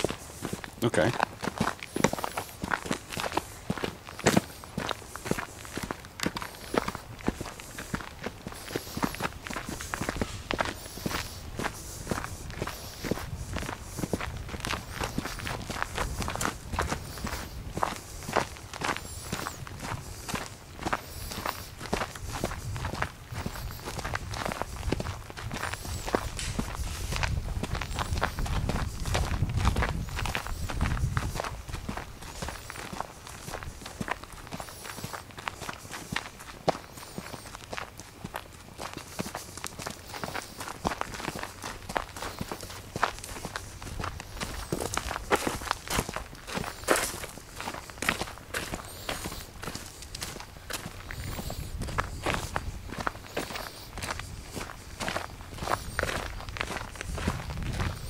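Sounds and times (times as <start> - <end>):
footsteps on dirt trail with leaves: 0.0 - 58.0.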